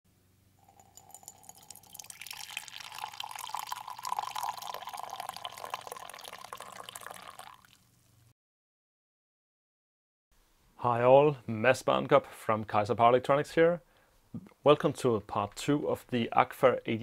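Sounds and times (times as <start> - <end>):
faint steady hum: 0.1 - 8.3
liquid pouring into a ceramic mug: 0.6 - 7.9.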